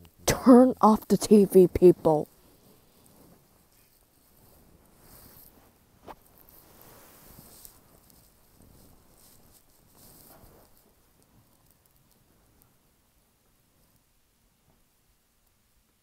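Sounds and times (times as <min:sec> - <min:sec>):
faint rustling and shuffling: 0:00.0 - 0:16.0.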